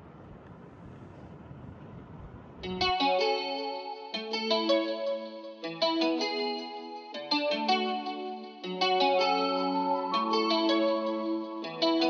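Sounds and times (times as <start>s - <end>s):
air vent rushing: 0.0s - 2.7s
plucked guitar with chorus: 2.6s - 12.0s.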